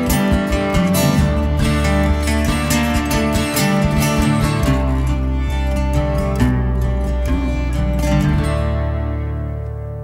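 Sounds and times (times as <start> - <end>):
acoustic guitar: 0.0 - 10.0
harp guitar: 0.0 - 10.0
violin: 0.0 - 10.0.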